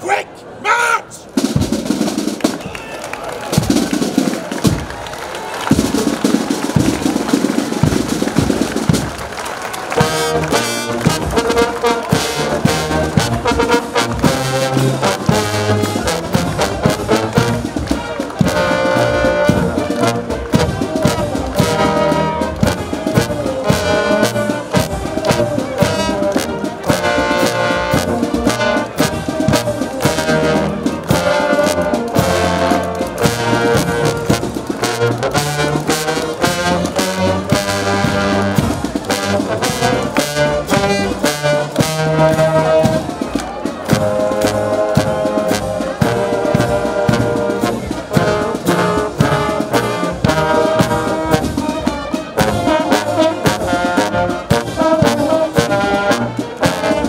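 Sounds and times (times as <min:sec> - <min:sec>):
marching brass band playing: 0:00.0 - 0:57.0.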